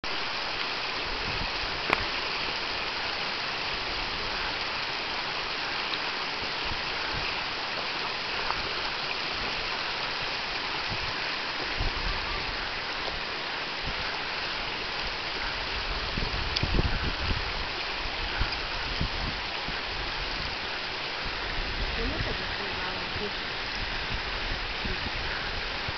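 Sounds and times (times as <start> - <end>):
stream rushing over stones: 0.0 - 25.9.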